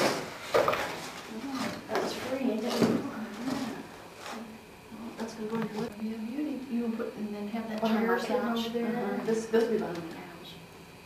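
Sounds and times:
indistinct talking: 0:01.3 - 0:10.6.

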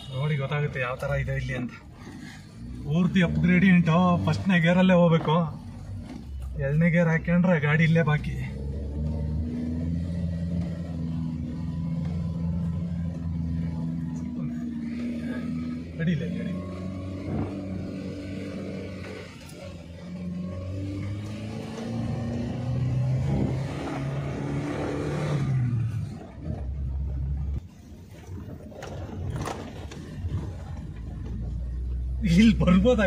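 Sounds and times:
car engine revving inside cabin: 0:01.0 - 0:27.6.

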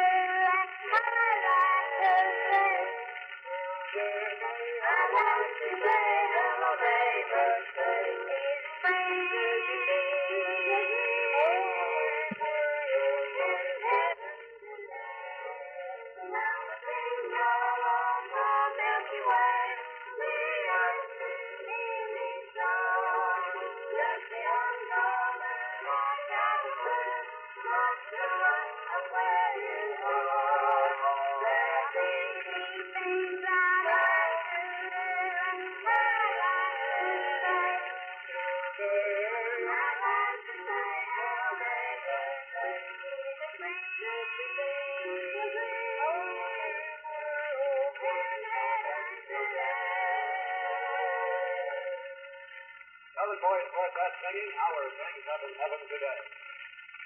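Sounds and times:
boys singing in harmony: 0:00.0 - 0:52.2.

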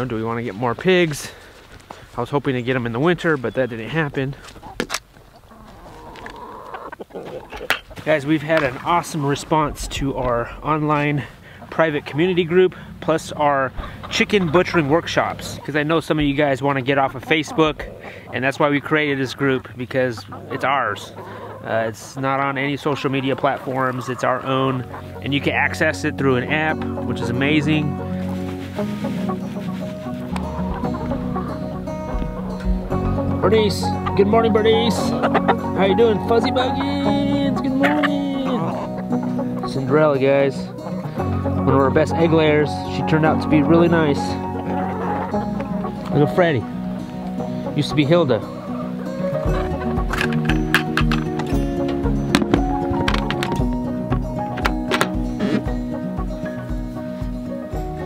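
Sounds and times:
chickens clucking softly: 0:02.8 - 0:42.6, 0:43.2 - 0:46.2
background music: 0:07.9 - 0:58.0.

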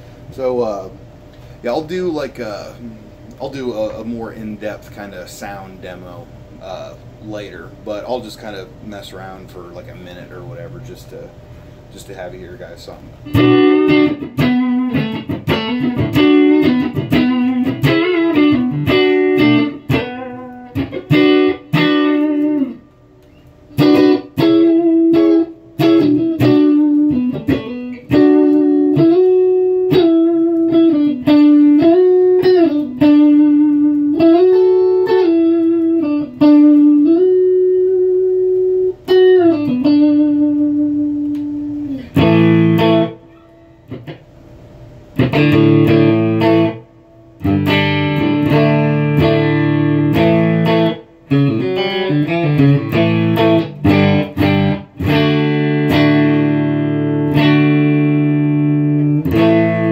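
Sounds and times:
clean electric guitar: 0:00.0 - 0:59.9.

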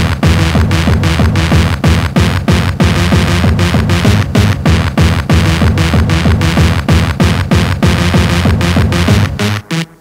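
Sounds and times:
heavy kick drum: 0:00.0 - 0:09.8
hardcore electronic music: 0:00.0 - 0:10.0.

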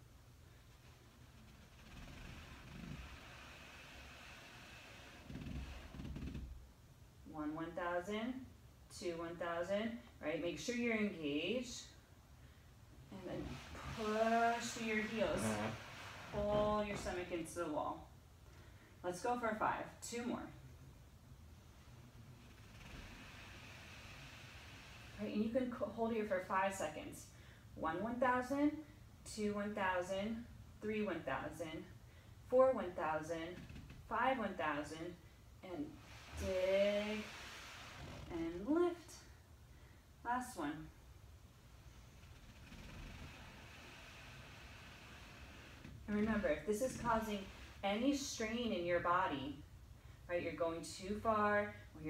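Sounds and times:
faint soft hiss: 0:00.0 - 0:07.5, 0:08.3 - 0:27.8, 0:33.4 - 0:52.0
faint low hum: 0:00.0 - 0:52.0
soft rustling: 0:13.1 - 0:17.6, 0:41.7 - 0:48.7.

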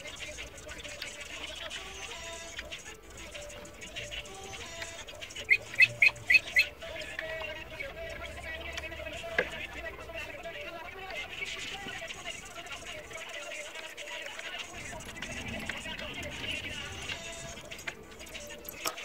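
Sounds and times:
faint background music: 0:00.0 - 0:19.0
bird calling sharp notes: 0:05.3 - 0:06.8.

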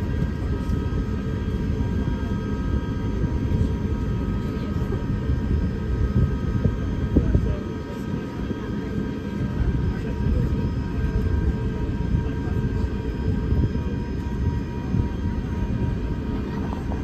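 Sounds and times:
airplane cabin rumble: 0:00.0 - 0:17.0.

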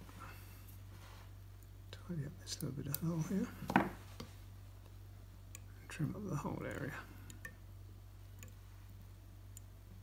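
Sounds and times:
low steady hum: 0:00.0 - 0:10.0.

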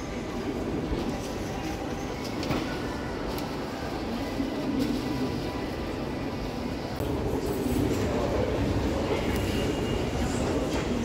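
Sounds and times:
shopping mall noise: 0:00.0 - 0:11.0.

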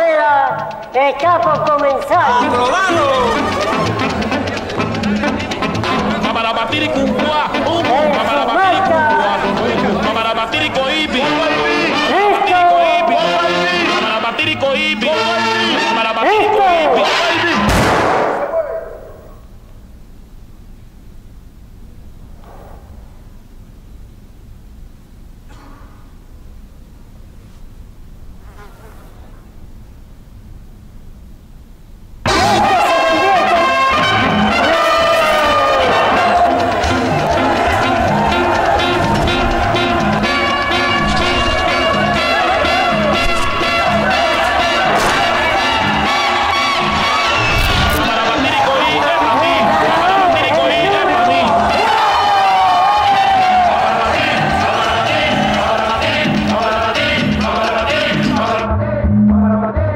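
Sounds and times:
music: 0:00.0 - 0:18.3, 0:32.2 - 0:59.9
crowd shouting and cheering: 0:00.0 - 0:19.3, 0:32.3 - 0:58.8.

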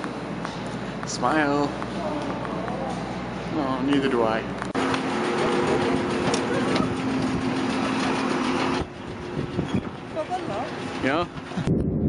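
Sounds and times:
jet airliner engine hum: 0:00.0 - 0:12.0.

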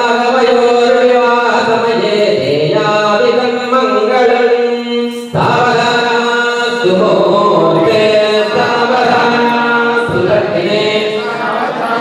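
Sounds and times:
mantra chanting in held notes: 0:00.0 - 0:11.9.

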